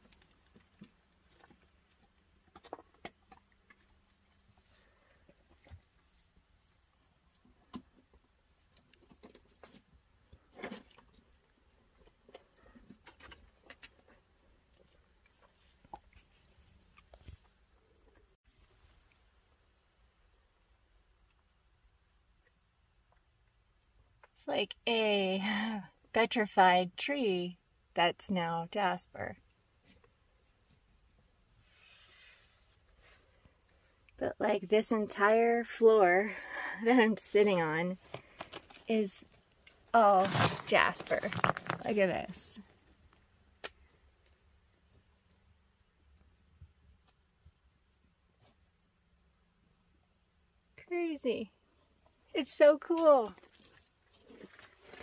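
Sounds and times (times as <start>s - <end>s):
faint soft hiss: 30.0s - 34.7s
scrape: 31.6s - 33.4s.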